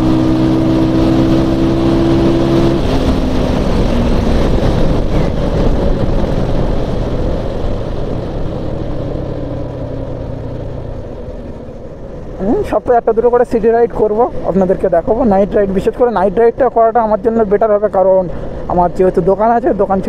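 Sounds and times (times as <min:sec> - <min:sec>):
wind rush on microphone: 0:00.0 - 0:12.7
motorcycle engine at high speed: 0:00.0 - 0:20.0.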